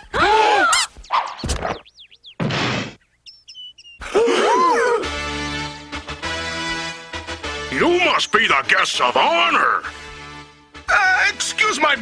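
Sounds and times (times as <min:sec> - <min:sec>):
cartoon bird-like tweets: 0:03.0 - 0:04.0
swooping cartoon cry: 0:04.0 - 0:05.1.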